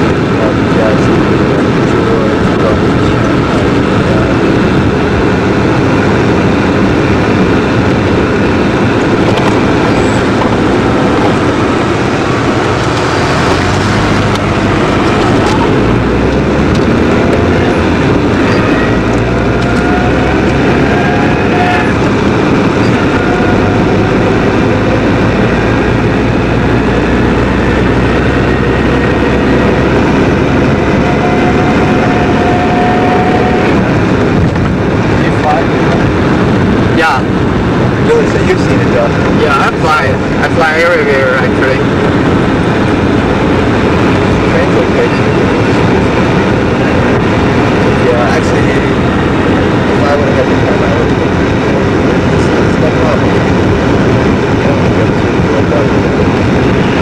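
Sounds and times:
car engine drone: 0:00.0 - 0:57.0
wind noise: 0:00.0 - 0:57.0.

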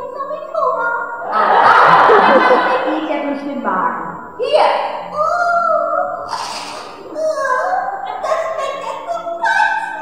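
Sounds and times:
audience laughing: 0:01.2 - 0:03.2.

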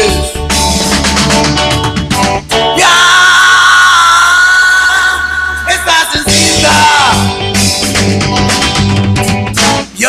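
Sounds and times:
steady bass: 0:00.0 - 0:10.0
high held vocal note: 0:02.6 - 0:07.4.

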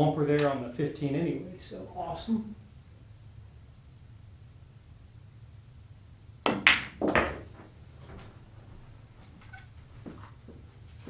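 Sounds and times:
ball knocking rail: 0:06.4 - 0:07.7
billiard balls clicking: 0:06.4 - 0:07.7
cue striking ball: 0:06.4 - 0:07.7.

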